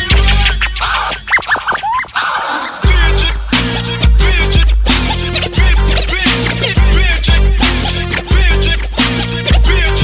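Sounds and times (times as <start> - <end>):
hip hop bass and drum beat: 0.0 - 10.0
turntable scratches: 0.0 - 10.0.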